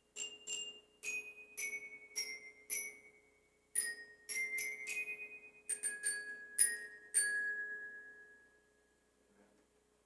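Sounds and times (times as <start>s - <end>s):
glockenspiel notes ringing: 0.0s - 9.1s.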